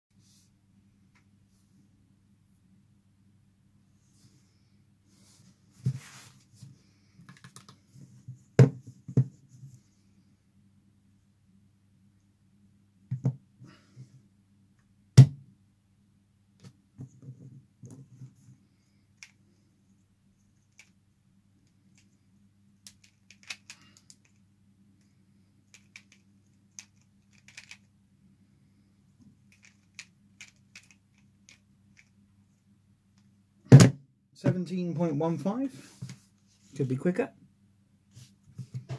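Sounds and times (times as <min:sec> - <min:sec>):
faint low hum: 0:00.2 - 0:38.9
plastic puzzle clicks: 0:22.8 - 0:24.4, 0:25.7 - 0:27.9, 0:29.5 - 0:32.1.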